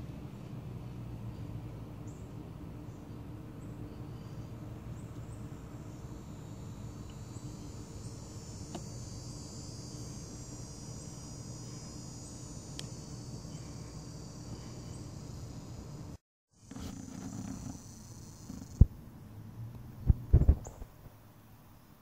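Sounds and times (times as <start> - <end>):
insect chorus trilling: 3.6 - 18.9.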